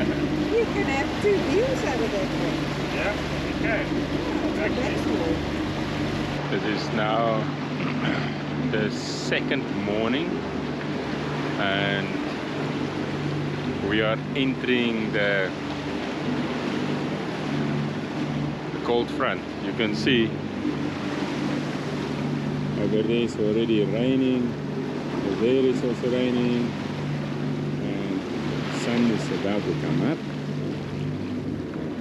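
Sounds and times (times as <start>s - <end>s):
low hum: 0.0s - 32.0s
sea noise: 0.0s - 32.0s
water and wind rushing: 0.0s - 32.0s.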